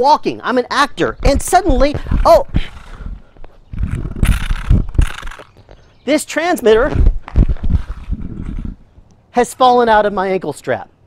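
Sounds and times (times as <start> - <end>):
device scraping on concrete: 3.8 - 5.6.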